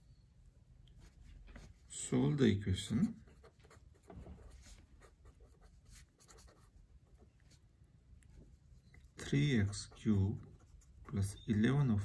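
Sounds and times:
pen scratching on paper: 0:03.0 - 0:07.6, 0:09.2 - 0:11.7.

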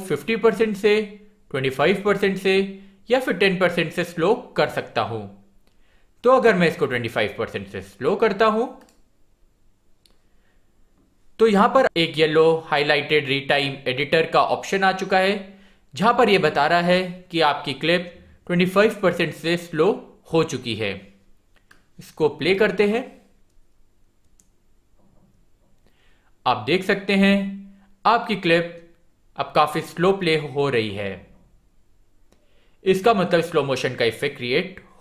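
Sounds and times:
faint computer mouse click: 0:08.8 - 0:09.1, 0:23.4 - 0:25.9.

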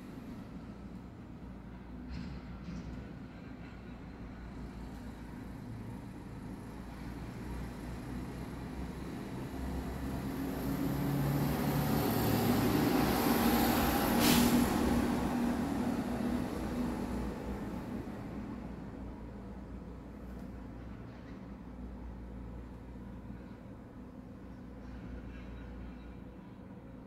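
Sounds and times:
motor vehicle passing by: 0:09.3 - 0:18.4.

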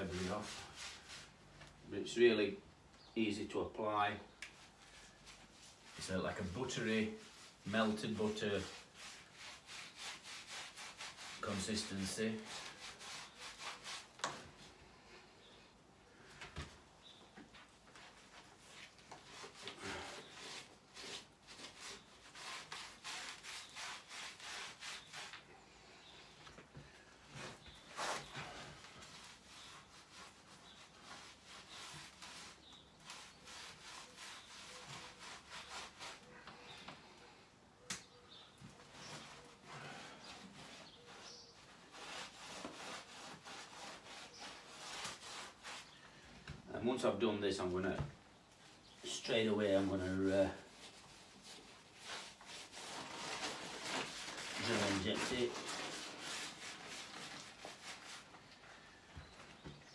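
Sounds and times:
paintbrush scrubbing on brick: 0:00.0 - 0:01.4, 0:04.6 - 0:14.6, 0:18.0 - 0:25.5, 0:27.4 - 0:36.4, 0:38.8 - 0:46.0, 0:49.2 - 0:58.4.

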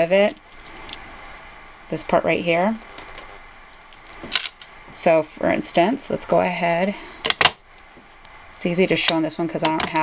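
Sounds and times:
wire and beads clicking: 0:00.2 - 0:01.4, 0:03.7 - 0:04.7.

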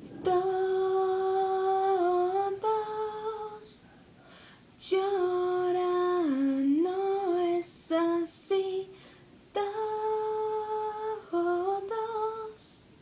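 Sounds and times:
woman singing wordless melody: 0:00.0 - 0:03.9, 0:04.8 - 0:13.0.

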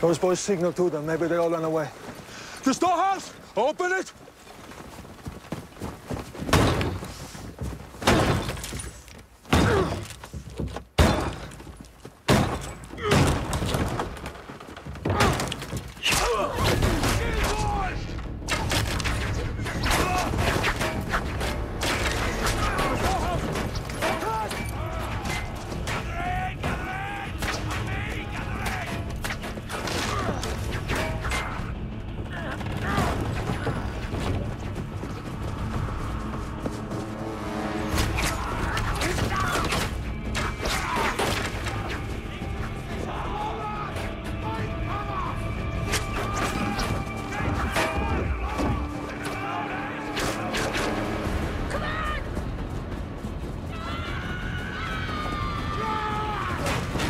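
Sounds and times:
men shouting: 0:22.4 - 0:29.1, 0:40.6 - 0:52.3.

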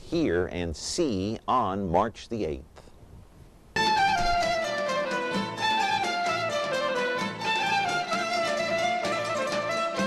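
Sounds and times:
acoustic folk ensemble with clarinet: 0:03.8 - 0:10.0.

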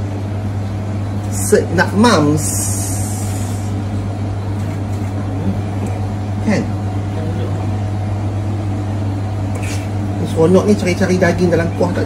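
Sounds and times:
extractor fan humming: 0:00.0 - 0:12.0.

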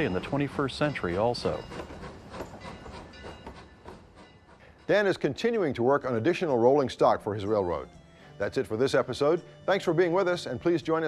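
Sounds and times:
train rolling on rails: 0:00.0 - 0:11.0.

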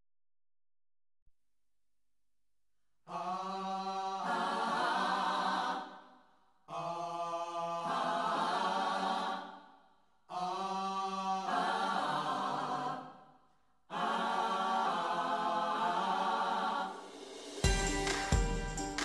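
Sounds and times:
unaccompanied chanted voices: 0:03.1 - 0:17.5.

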